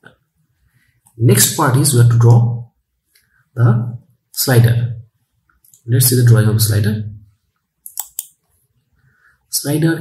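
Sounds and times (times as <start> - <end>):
computer mouse clicks: 7.8 - 8.6.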